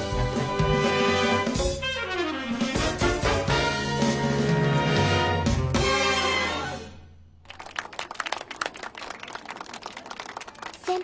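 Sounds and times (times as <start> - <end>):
people clapping: 7.4 - 11.0.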